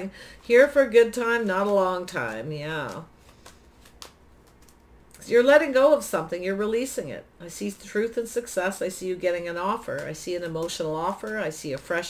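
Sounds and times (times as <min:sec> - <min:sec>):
cards clicking softly: 0:01.4 - 0:04.9.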